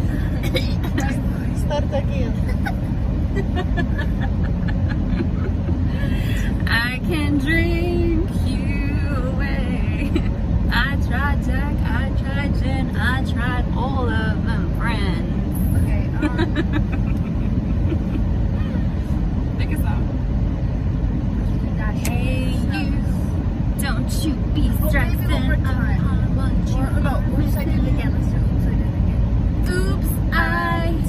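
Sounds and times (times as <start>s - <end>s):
women talking and laughing: 0.0s - 1.5s, 2.4s - 6.8s, 9.4s - 10.4s, 14.1s - 19.0s, 24.1s - 29.0s
car cabin rumble: 0.0s - 31.0s.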